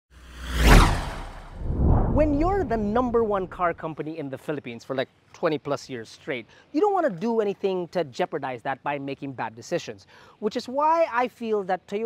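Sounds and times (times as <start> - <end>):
whoosh swish: 0.1 - 3.8
deep rumble: 0.3 - 3.8.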